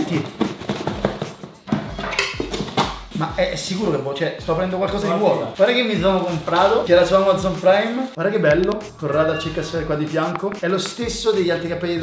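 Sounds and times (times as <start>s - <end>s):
cardboard box shaken rattling: 0.0s - 1.6s.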